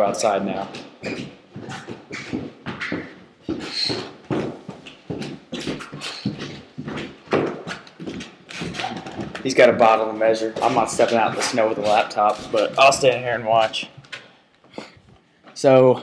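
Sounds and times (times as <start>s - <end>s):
footsteps on indoor stairs: 0.0s - 15.7s.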